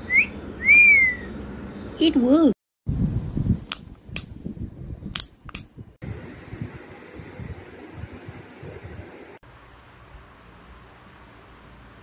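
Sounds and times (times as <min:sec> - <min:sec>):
high whistled notes: 0:00.0 - 0:01.3.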